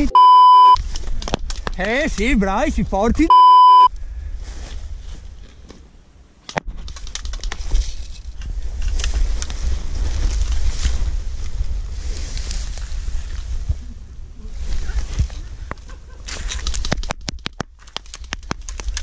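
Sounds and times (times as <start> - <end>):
sharp clicks and snaps: 6.4 - 7.8, 16.3 - 19.0
wind buffeting microphone: 7.6 - 15.9.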